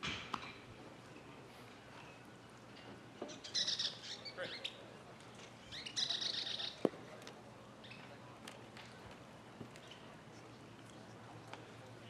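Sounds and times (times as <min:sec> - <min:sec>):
bird chirping: 0:03.3 - 0:04.8, 0:05.6 - 0:06.8.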